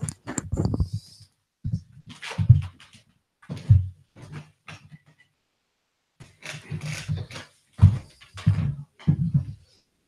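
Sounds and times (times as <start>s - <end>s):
microphone handling rustles: 0.0s - 4.8s.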